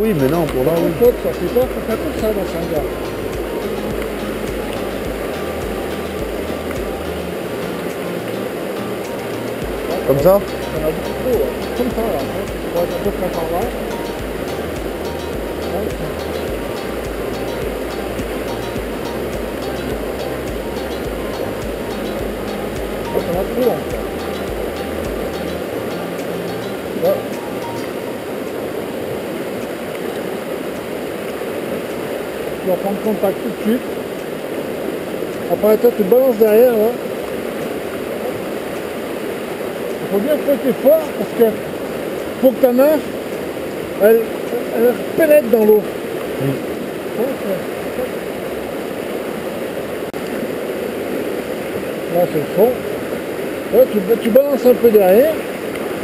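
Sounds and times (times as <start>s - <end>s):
river rushing over rocks: 0.0s - 56.0s
faint voice: 46.4s - 48.1s.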